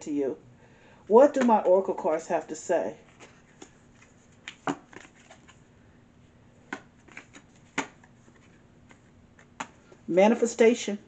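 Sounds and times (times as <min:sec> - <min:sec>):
playing cards snapping: 0:03.2 - 0:05.6, 0:06.7 - 0:08.1, 0:08.8 - 0:09.8.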